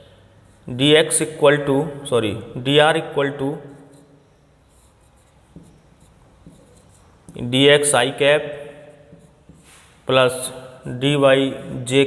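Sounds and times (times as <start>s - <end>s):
marker writing on whiteboard: 0.1s - 1.8s, 2.7s - 10.1s
marker tapping whiteboard: 5.2s - 7.5s, 8.7s - 9.7s.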